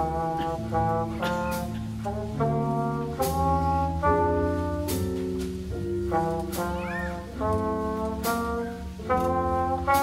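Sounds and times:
drums and bass: 0:00.0 - 0:10.0
horns holding chords: 0:00.0 - 0:10.0.

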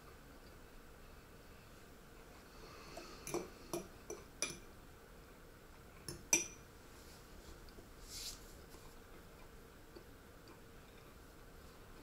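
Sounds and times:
metal spoon clinking on plate: 0:06.1 - 0:06.6.

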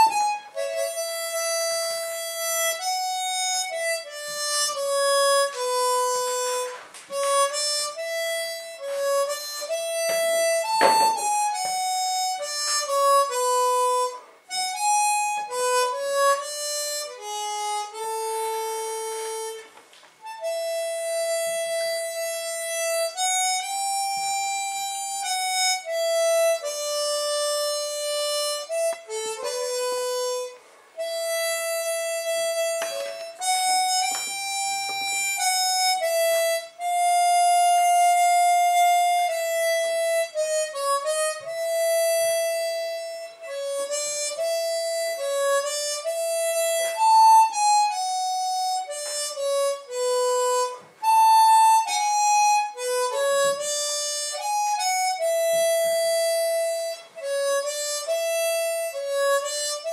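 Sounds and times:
harmonica melody: 0:00.0 - 0:59.9.

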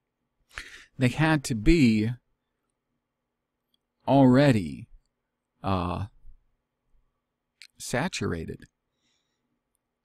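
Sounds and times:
man speaking: 0:00.9 - 0:02.2, 0:04.0 - 0:05.0, 0:05.6 - 0:06.3, 0:07.6 - 0:08.7.

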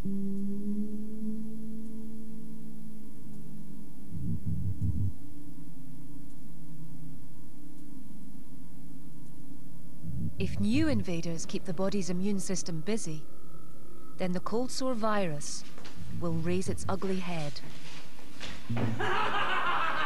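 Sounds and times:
higher synthesizer tone: 0:00.0 - 0:05.6, 0:10.0 - 0:13.3
low rapid throbbing pulse: 0:00.0 - 0:08.0, 0:09.8 - 0:13.0, 0:16.0 - 0:17.6
synthesizer drone: 0:00.0 - 0:14.2.

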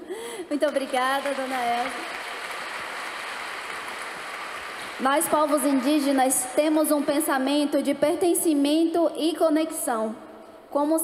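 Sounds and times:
large audience applauding: 0:00.6 - 0:06.5.

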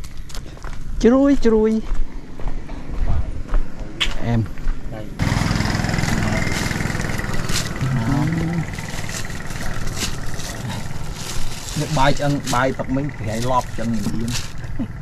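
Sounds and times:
people talking: 0:03.0 - 0:06.9, 0:07.5 - 0:11.0, 0:11.6 - 0:15.0
small engine running: 0:05.2 - 0:15.0.

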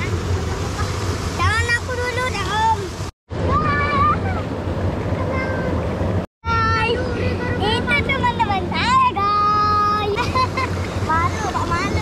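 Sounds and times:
stream water rushing: 0:00.0 - 0:12.0.

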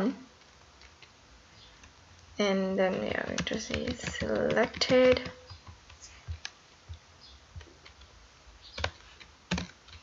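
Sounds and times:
keyboard keystrokes: 0:02.9 - 0:06.6, 0:08.7 - 0:10.0.

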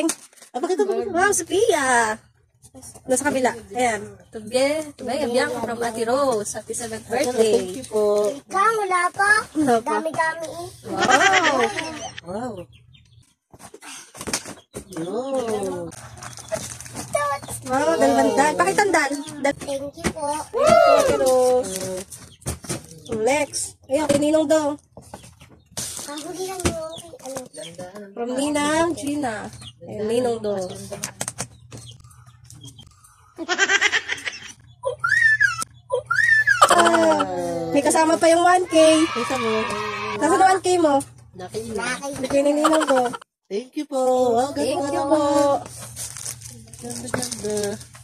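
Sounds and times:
paper gift bag rustling: 0:15.6 - 0:19.2, 0:44.6 - 0:48.0
girl squealing with excitement: 0:34.9 - 0:36.9.

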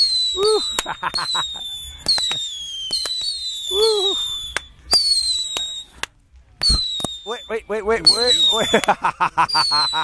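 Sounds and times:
firework cracks: 0:00.0 - 0:10.0
firework whistles: 0:00.0 - 0:10.0.

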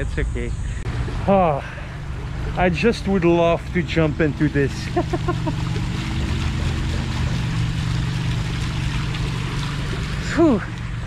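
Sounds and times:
fountain water splashing: 0:00.9 - 0:11.0.

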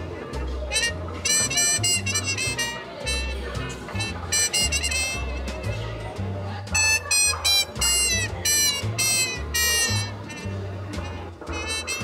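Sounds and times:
bright jazz lead instrument: 0:00.0 - 0:12.0.

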